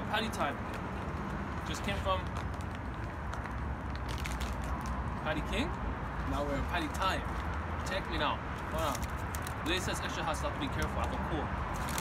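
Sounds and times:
faint crackles and clicks: 0:02.2 - 0:05.0.

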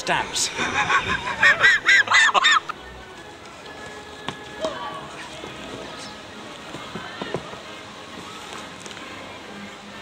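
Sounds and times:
man laughing heartily: 0:00.5 - 0:02.7.

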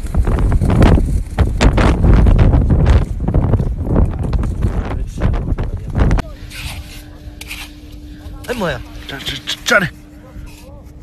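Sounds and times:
strong low rumble: 0:00.0 - 0:06.3
hand tool digging into wet mud: 0:06.5 - 0:09.7.

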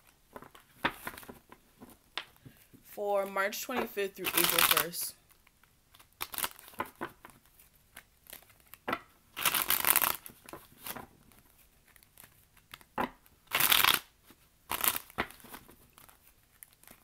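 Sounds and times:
cards being shuffled: 0:00.0 - 0:17.0.

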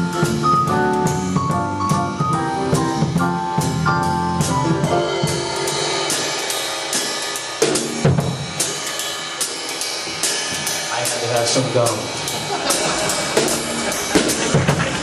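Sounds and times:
heavy low drum hit: 0:00.0 - 0:09.0
drum kit solo with sticks: 0:00.0 - 0:15.0
jazz band notes: 0:00.0 - 0:15.0.

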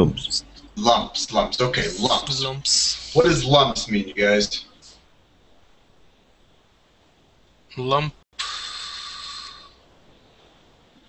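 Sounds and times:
burst of hiss: 0:08.4 - 0:09.8.

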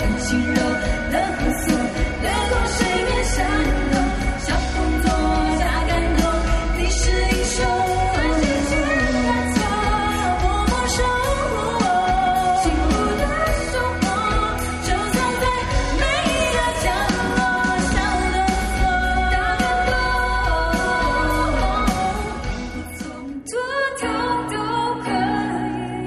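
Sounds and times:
electric bass: 0:00.0 - 0:23.1
drum kit beat: 0:00.0 - 0:23.4
keyboard: 0:00.0 - 0:26.0
women singing: 0:00.0 - 0:26.0.

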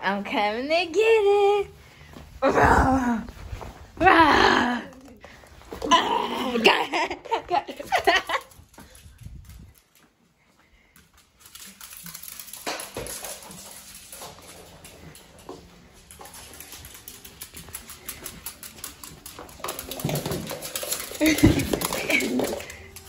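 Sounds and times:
dog claws ticking on wood floor: 0:11.0 - 0:23.0.

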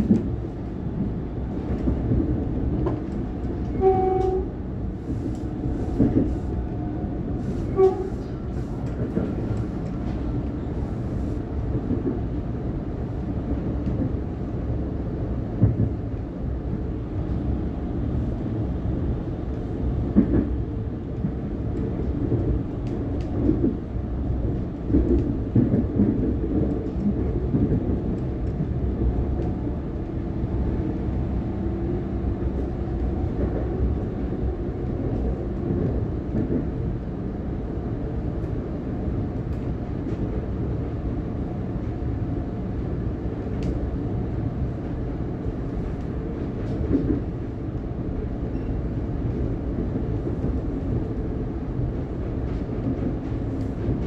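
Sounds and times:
electric train rumbling: 0:00.0 - 0:54.0
short train horn note: 0:03.7 - 0:04.5, 0:07.7 - 0:08.3.

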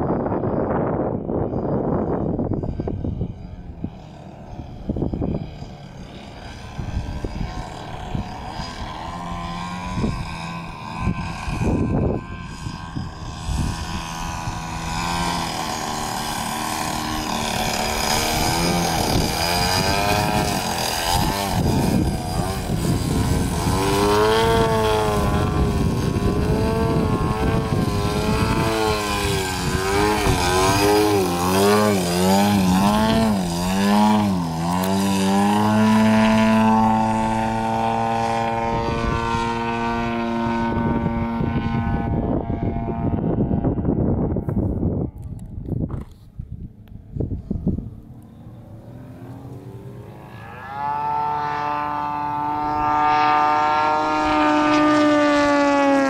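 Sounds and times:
airplane engine and propeller: 0:00.0 - 0:56.0.

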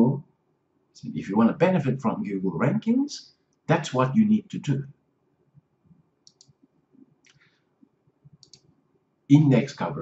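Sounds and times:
faint clicks: 0:06.2 - 0:07.5, 0:08.3 - 0:08.7.

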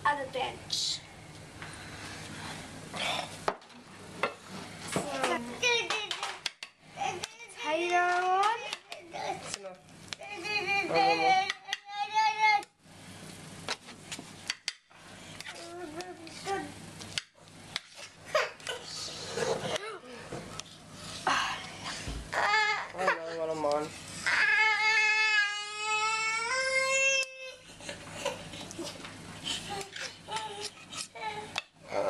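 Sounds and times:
child talking: 0:00.0 - 0:01.0, 0:04.9 - 0:06.4, 0:07.0 - 0:12.7, 0:15.5 - 0:16.8, 0:19.7 - 0:20.3.

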